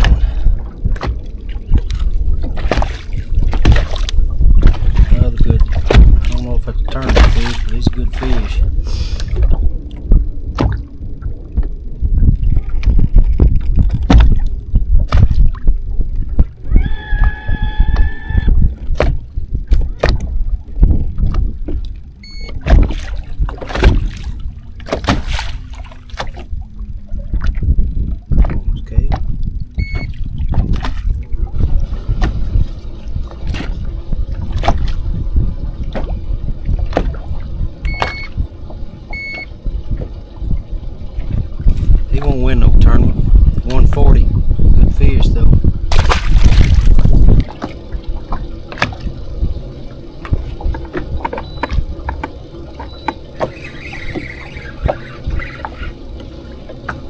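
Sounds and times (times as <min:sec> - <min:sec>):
water slapping against hull: 0:00.0 - 0:57.0
wind buffeting microphone: 0:00.0 - 0:57.0
short electronic beeps: 0:22.2 - 0:22.6, 0:29.8 - 0:30.2, 0:37.8 - 0:38.4, 0:39.1 - 0:39.5, 0:51.4 - 0:51.7, 0:52.8 - 0:53.2.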